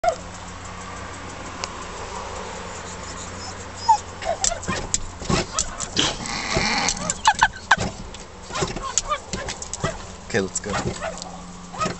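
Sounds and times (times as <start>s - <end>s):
small dog barking angrily: 4.1s - 7.8s, 8.5s - 11.9s.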